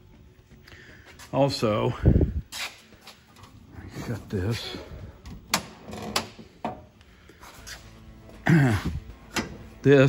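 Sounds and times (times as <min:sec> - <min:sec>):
man clearing his throat: 0:08.4 - 0:09.1.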